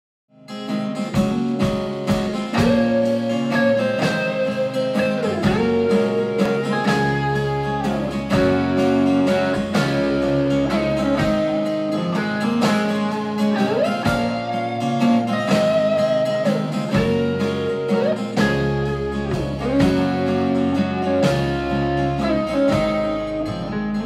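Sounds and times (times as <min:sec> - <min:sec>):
electric guitar: 0:00.3 - 0:24.0
bass guitar: 0:00.4 - 0:24.0
drums: 0:00.4 - 0:24.0
sliding guitar notes: 0:00.5 - 0:24.0.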